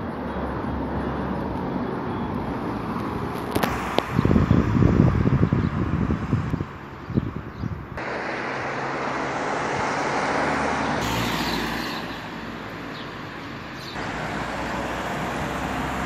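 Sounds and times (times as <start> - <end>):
car road noise: 0.0 - 16.0
wind buffeting microphone: 3.1 - 11.1.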